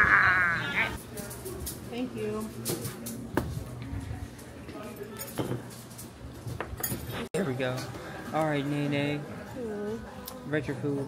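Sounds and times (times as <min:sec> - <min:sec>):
cutlery and dishes clinking: 0:04.8 - 0:07.9.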